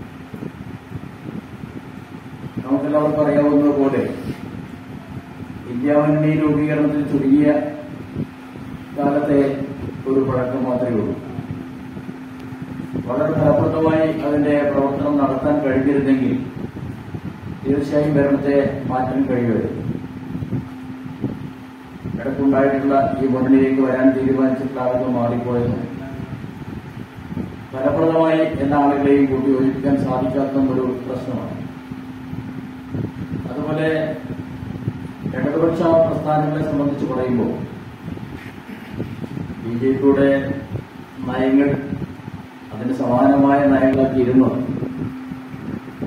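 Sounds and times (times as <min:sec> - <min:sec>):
faint steady hum: 0:00.0 - 0:46.0
low room rumble: 0:00.0 - 0:46.0.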